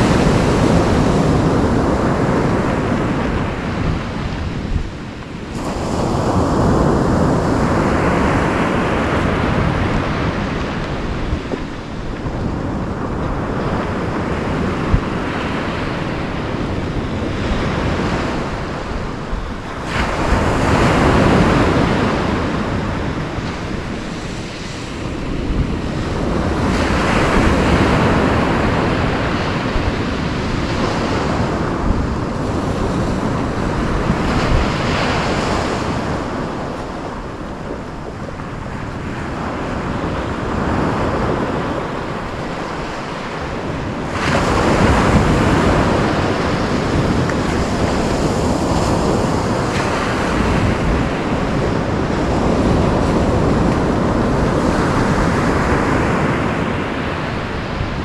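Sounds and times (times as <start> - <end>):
wind on microphone: 0.0 - 58.0.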